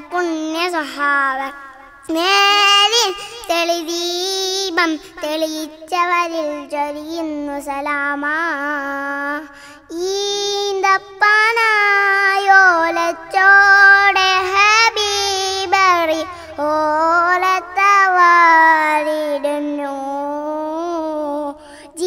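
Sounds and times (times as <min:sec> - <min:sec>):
boy singing solo: 0:00.0 - 0:22.0
boy breathing: 0:09.4 - 0:09.9, 0:16.2 - 0:16.6, 0:21.5 - 0:22.0.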